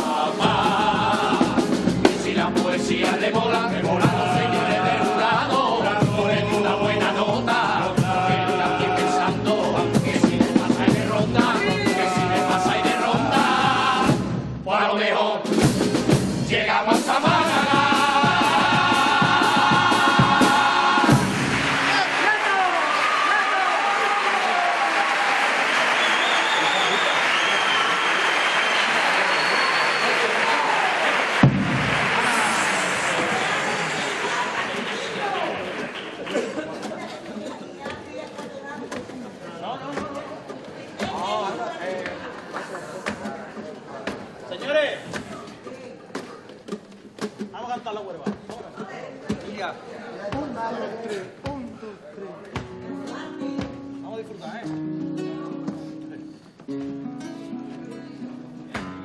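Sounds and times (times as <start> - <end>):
group singing with final hit: 0.0 - 15.8, 16.4 - 22.0
voices in a hall: 0.0 - 59.0
audience applauding and cheering: 19.8 - 37.1.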